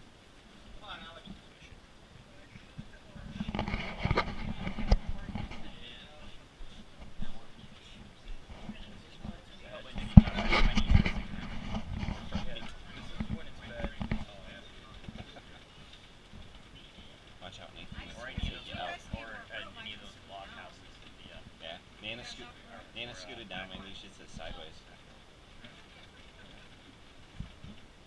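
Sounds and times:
indistinct passenger voices: 0:00.6 - 0:28.0.

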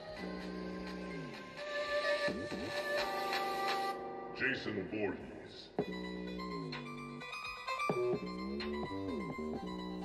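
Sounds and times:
music from speaker: 0:00.0 - 0:10.0.

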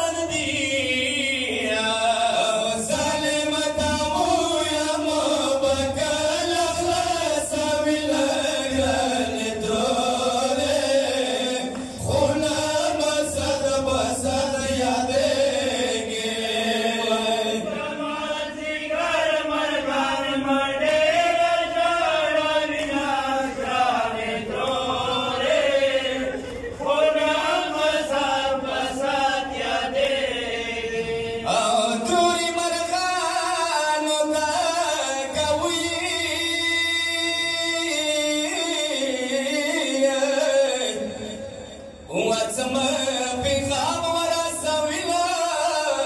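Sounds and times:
men chanting a lament: 0:00.0 - 0:46.0.

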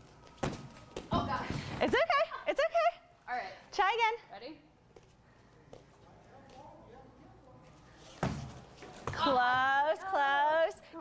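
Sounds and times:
woman laughing: 0:01.9 - 0:03.1.

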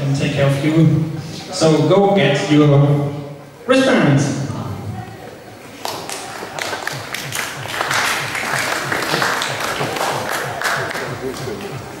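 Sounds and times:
crowd voices: 0:00.0 - 0:12.0
audience applauding: 0:05.8 - 0:12.0
music with low beat: 0:06.4 - 0:12.0.

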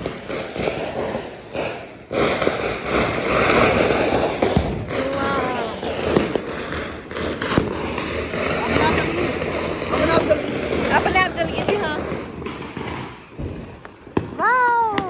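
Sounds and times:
fireworks bangs and crackles: 0:00.0 - 0:15.0
people's voices: 0:04.9 - 0:06.4, 0:07.9 - 0:12.2.

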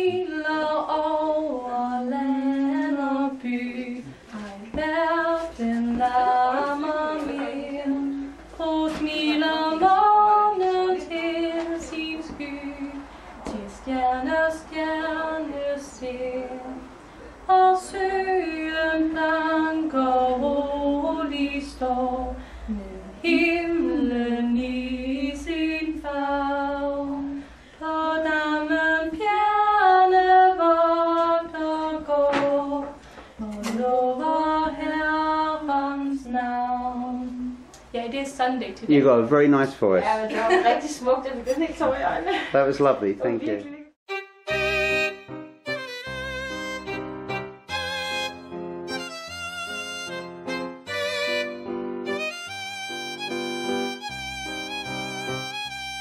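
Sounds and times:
woman singing a hymn solo: 0:00.0 - 0:16.9, 0:17.5 - 0:38.6.

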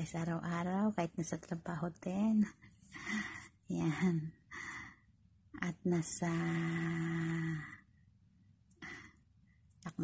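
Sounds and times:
woman speaking: 0:00.0 - 0:04.4, 0:05.6 - 0:07.8, 0:09.8 - 0:10.0.

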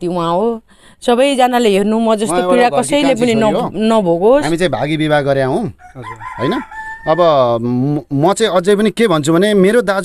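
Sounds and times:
rooster crowing: 0:05.8 - 0:07.6.

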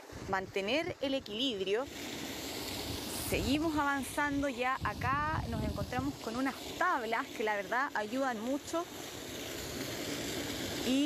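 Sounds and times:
running water hissing: 0:00.0 - 0:11.0.

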